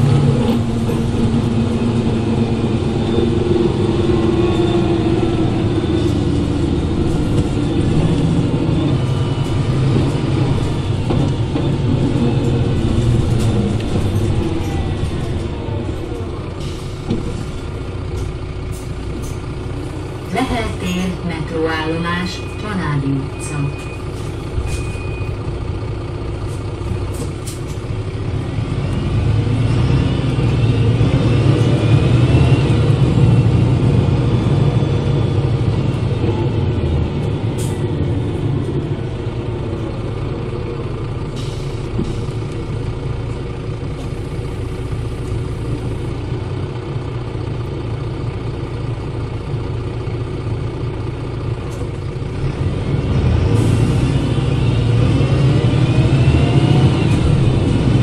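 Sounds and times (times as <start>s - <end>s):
bus diesel engine accelerating: 0.0s - 58.0s
high axle whine: 0.0s - 58.0s.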